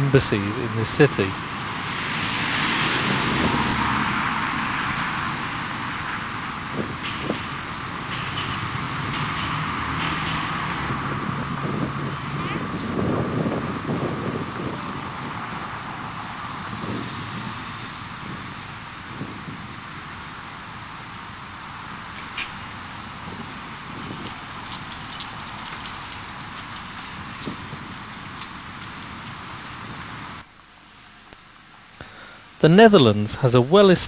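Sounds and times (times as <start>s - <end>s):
passing car traffic: 0.0s - 33.1s.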